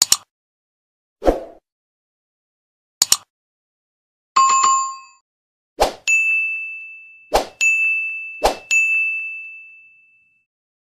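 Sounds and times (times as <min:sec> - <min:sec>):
bright bell ding: 0:06.1 - 0:10.5.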